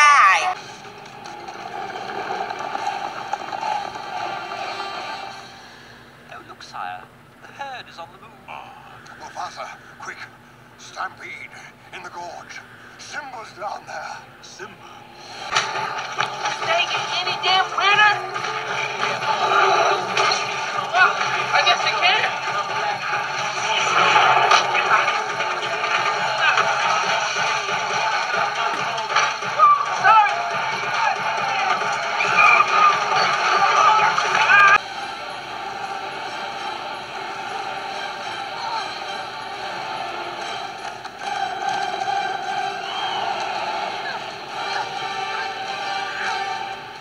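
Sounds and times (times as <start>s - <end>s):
soundtrack music: 0.0s - 5.7s, 15.2s - 47.0s
voices: 2.6s - 47.0s
action sound effects: 15.2s - 46.6s.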